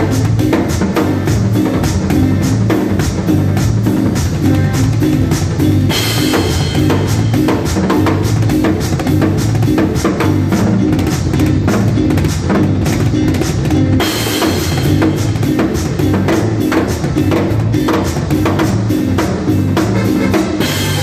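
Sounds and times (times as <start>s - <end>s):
drum kit playing: 0.0s - 21.0s
electric bass line: 0.0s - 21.0s
cymbal crash: 4.0s - 9.0s.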